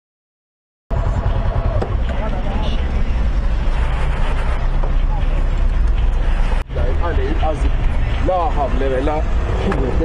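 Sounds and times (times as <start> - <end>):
low traffic rumble: 0.9 - 10.0
motorcycle rumbling in traffic: 0.9 - 10.0.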